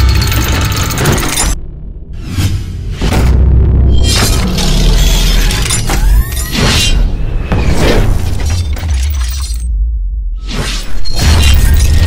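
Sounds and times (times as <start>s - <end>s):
cinematic music: 0.0s - 9.1s
heavy bass rumble: 1.3s - 5.7s, 9.7s - 10.4s
glass shatter effects: 8.2s - 9.7s.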